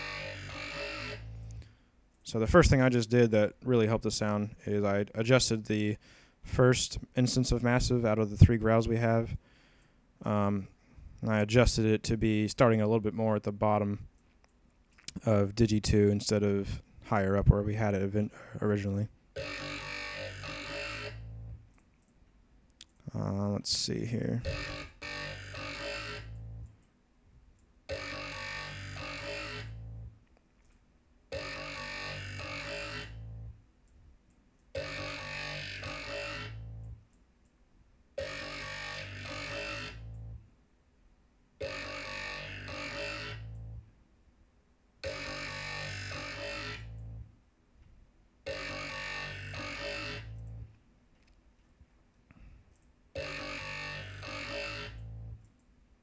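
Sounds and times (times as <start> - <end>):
growling synth bass: 0.0 - 1.7, 18.8 - 21.6, 24.3 - 26.7, 27.9 - 30.2, 31.3 - 33.6, 34.8 - 37.0, 38.2 - 40.5, 41.6 - 43.9, 45.0 - 47.3, 48.5 - 50.7, 53.2 - 55.4.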